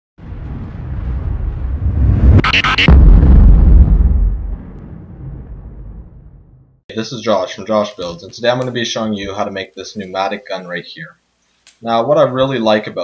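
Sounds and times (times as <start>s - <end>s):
low rumble: 0.2s - 6.8s.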